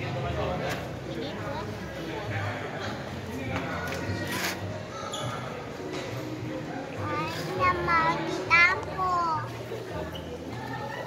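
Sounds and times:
young children talking: 7.0 - 9.8.

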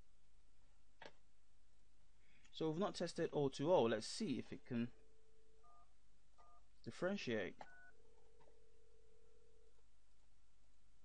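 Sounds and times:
faint telephone line tone: 5.6 - 6.7, 7.6 - 8.0.

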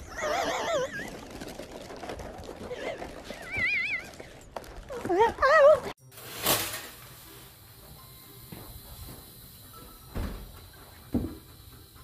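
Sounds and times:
dog whining: 0.0 - 1.2.

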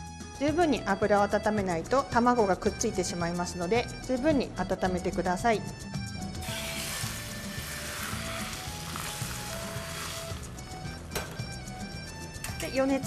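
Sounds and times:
egg sizzling in frying pan: 6.4 - 11.1.

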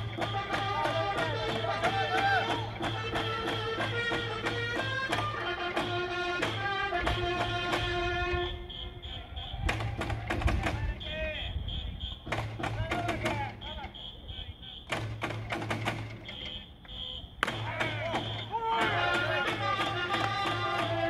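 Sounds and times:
fans shouting: 0.0 - 15.2, 16.0 - 21.0
electronic whistle beeps: 8.2 - 10.1, 10.8 - 15.3, 16.0 - 19.5
taiko drum strikes: 12.3 - 13.6, 14.9 - 16.3.

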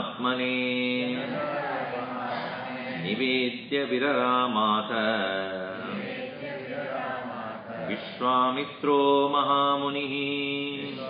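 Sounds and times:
man chanting: 0.0 - 1.6, 2.2 - 6.6, 7.6 - 11.0.

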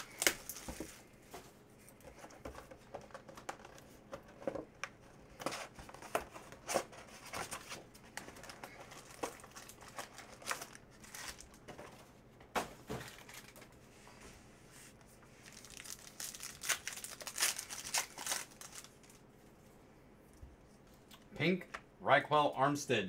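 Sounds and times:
foil packs rustling: 0.0 - 1.1, 5.3 - 13.8, 15.4 - 19.2
plastic shrink-wrap crinkling: 0.0 - 1.1, 5.8 - 11.7, 15.4 - 19.3.

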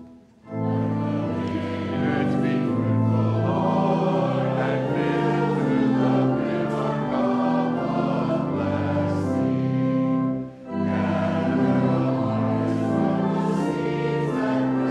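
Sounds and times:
congregation singing: 0.0 - 14.9
organ accompaniment: 0.0 - 14.9.

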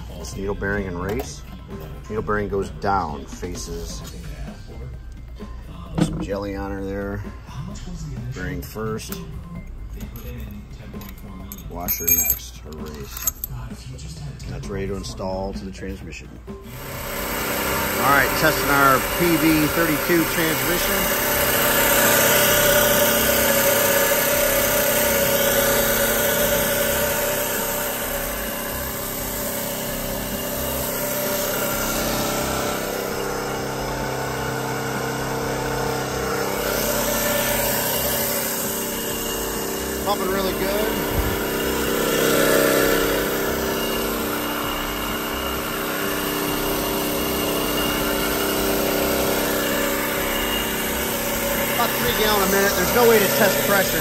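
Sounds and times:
transmission whine and hum: 16.5 - 54.0
pump moving fluid: 16.7 - 54.0.

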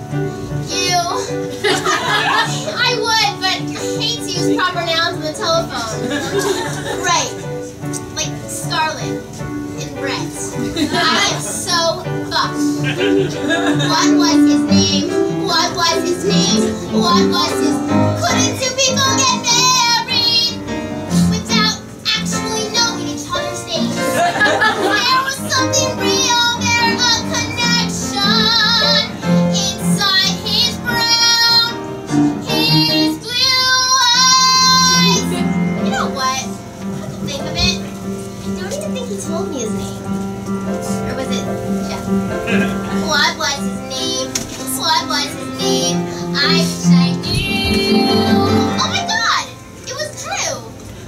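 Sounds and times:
instrumental accompaniment: 0.0 - 51.0
woman singing a show tune: 2.3 - 7.4, 9.8 - 24.2, 24.8 - 31.8, 32.4 - 36.6, 42.9 - 50.5.

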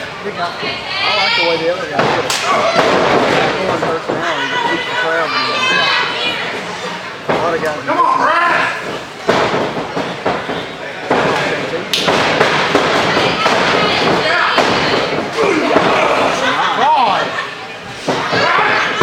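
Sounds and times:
wrestlers hitting ring mat thuds: 2.0 - 4.3, 8.8 - 16.5
spectators shouting: 12.9 - 17.4.

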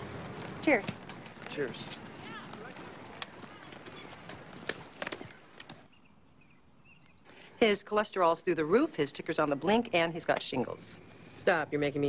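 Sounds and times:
distant voices: 0.0 - 12.0.

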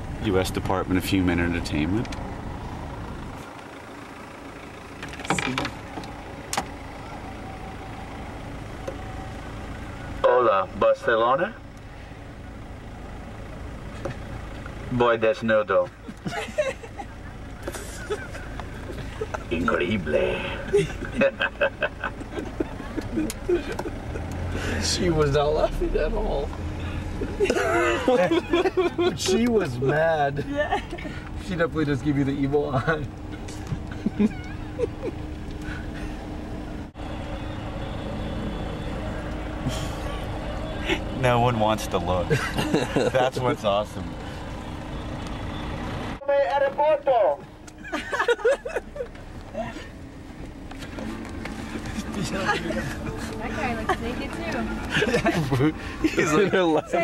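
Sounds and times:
vehicle engine and road rumble: 0.0 - 57.0.

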